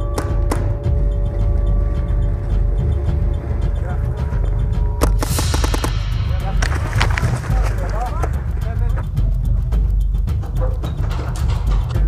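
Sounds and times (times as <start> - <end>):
low rumble: 0.7 - 12.0.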